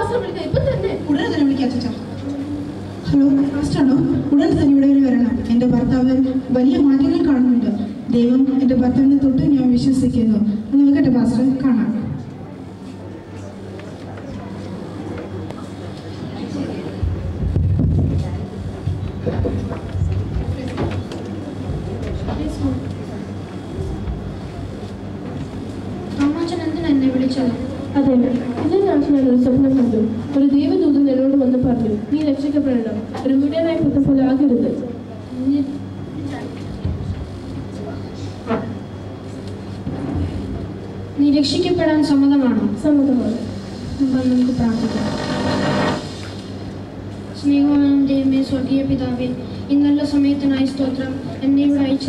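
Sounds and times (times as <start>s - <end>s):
faint indistinct voices: 0.0s - 52.0s
steady low hum: 0.0s - 52.0s.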